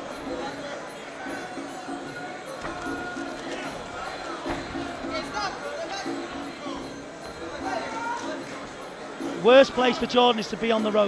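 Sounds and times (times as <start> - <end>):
crowd shouting in an arena: 0.0 - 11.0.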